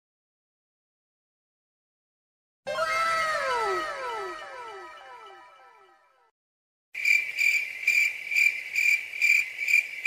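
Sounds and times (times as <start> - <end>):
cricket-like chirping trill: 7.0 - 10.0.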